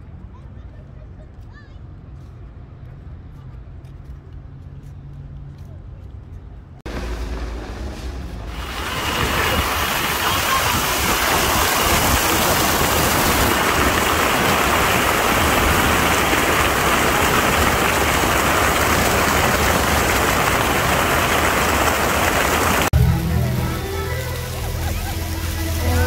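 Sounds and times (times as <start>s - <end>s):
fountain water splashing: 8.4s - 26.0s.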